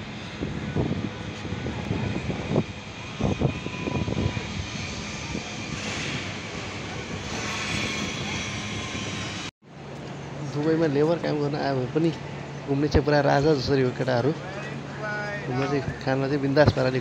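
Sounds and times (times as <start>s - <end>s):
engine drone with low hum: 0.0s - 17.0s.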